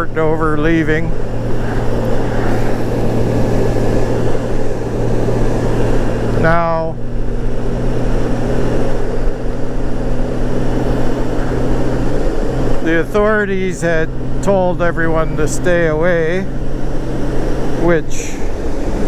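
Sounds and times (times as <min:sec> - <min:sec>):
motorcycle engine hum: 0:00.0 - 0:19.0.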